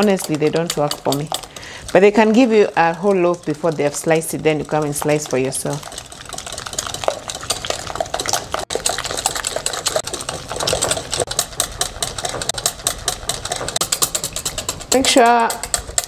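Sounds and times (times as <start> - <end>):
whisk rattling in glass bowl: 0.0 - 16.0.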